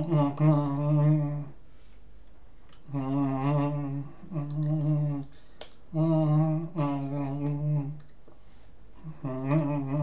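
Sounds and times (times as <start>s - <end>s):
man humming: 0.0s - 1.6s, 2.8s - 8.1s, 9.0s - 10.0s.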